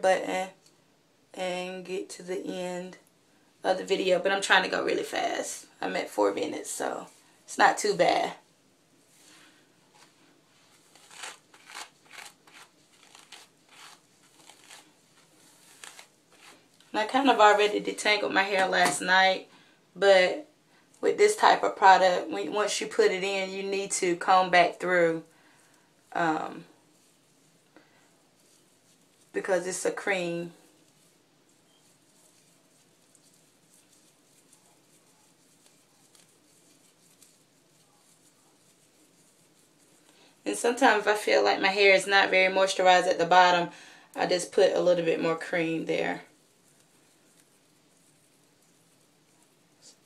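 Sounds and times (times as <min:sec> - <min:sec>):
hairbrush brushing hair: 0:09.1 - 0:19.3, 0:21.5 - 0:43.5, 0:44.5 - 0:50.0.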